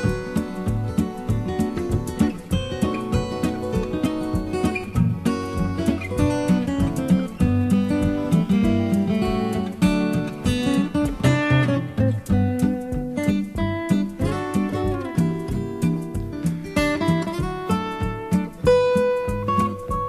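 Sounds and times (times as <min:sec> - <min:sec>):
acoustic guitar strummed and picked: 0:00.0 - 0:20.0.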